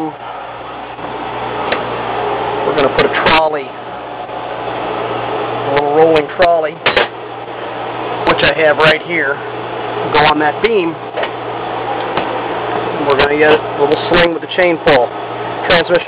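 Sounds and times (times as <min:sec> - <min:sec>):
low machinery hum: 0:00.0 - 0:16.0
man speaking: 0:08.2 - 0:09.4, 0:10.1 - 0:11.0.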